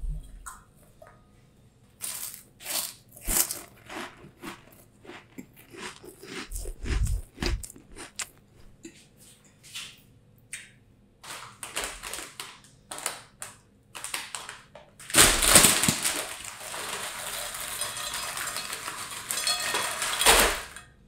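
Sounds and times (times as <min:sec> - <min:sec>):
foil bag crinkling: 0:02.0 - 0:04.7, 0:11.2 - 0:20.8
snacks clattering into glass bowl: 0:15.4 - 0:21.0.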